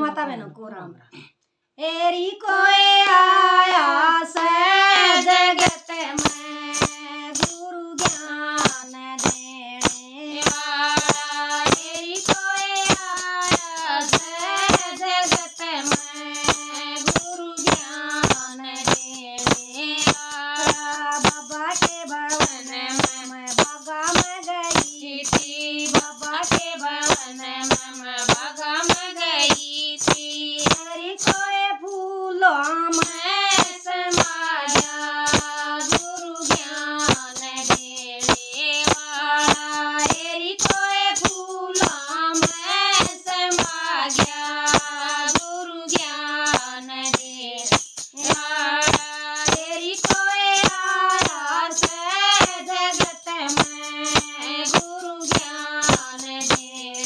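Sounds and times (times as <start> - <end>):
women singing devotional song: 1.2 - 57.0
handheld shakers rattling: 4.4 - 57.0.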